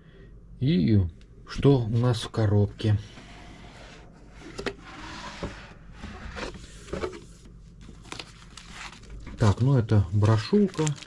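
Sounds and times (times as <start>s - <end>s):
cardboard lid scraping: 3.2s - 7.4s
paper leaflets handled: 6.6s - 11.0s.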